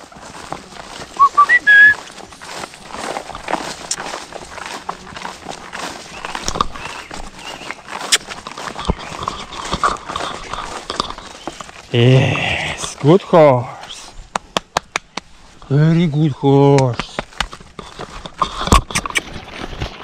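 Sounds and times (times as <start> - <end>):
horse walking through grass: 0.0 - 14.3, 15.2 - 20.0.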